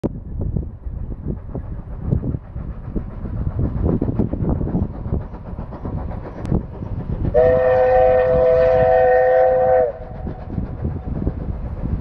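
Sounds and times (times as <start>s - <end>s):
steam train rumble: 0.0s - 12.0s
steam train puffing: 0.7s - 12.0s.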